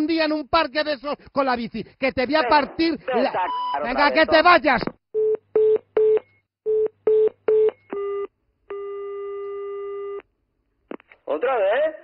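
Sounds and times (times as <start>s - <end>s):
steady telephone tone: 5.2s - 10.2s.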